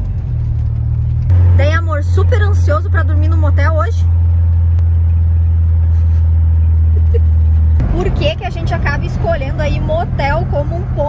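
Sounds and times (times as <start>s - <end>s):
van engine and road noise: 0.0s - 11.0s.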